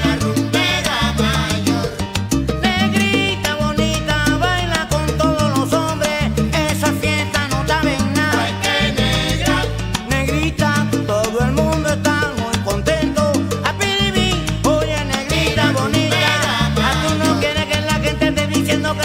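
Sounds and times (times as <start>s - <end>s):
salsa music with singing: 0.0s - 19.0s.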